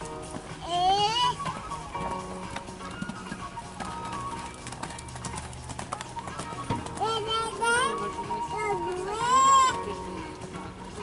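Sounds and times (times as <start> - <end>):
background music: 0.0 - 11.0
horse hoofbeats on sand: 0.0 - 11.0.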